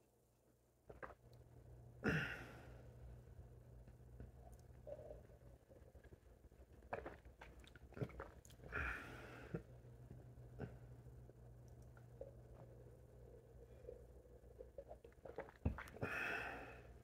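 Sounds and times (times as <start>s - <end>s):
steady low hum: 0.1s - 17.0s
person breathing while drinking: 8.7s - 9.7s, 15.7s - 17.0s.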